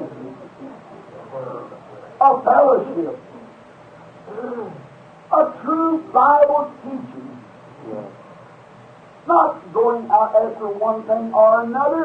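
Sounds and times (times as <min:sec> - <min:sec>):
faint vocal murmur: 0:00.0 - 0:02.2, 0:04.2 - 0:05.0, 0:07.7 - 0:08.6
tape hiss: 0:00.0 - 0:12.0.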